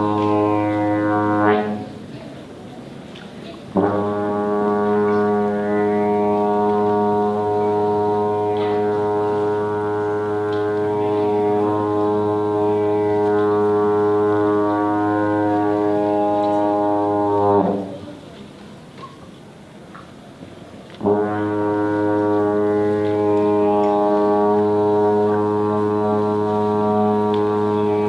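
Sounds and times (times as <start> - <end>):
trombone long low note: 0.0 - 2.2, 3.7 - 18.1, 21.0 - 28.0.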